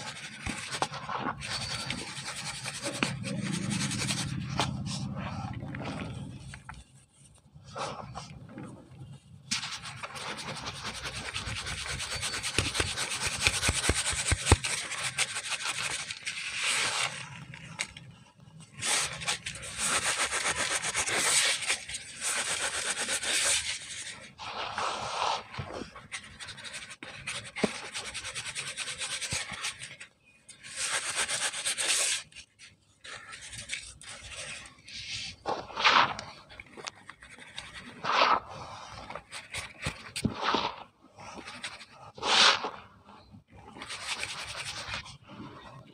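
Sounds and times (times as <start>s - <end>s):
cement powder shaken through sieve: 0.0s - 4.8s, 9.5s - 17.2s, 18.8s - 29.9s, 30.6s - 32.3s, 33.1s - 45.6s.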